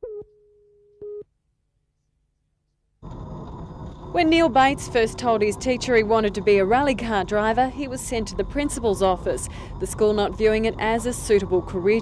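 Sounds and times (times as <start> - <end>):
car engine and road noise: 3.0 - 12.0.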